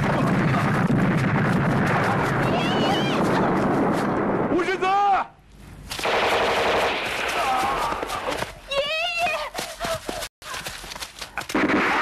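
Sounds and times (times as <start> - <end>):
rapid machine-gun fire: 6.0 - 7.6
woman shouting: 8.7 - 9.6.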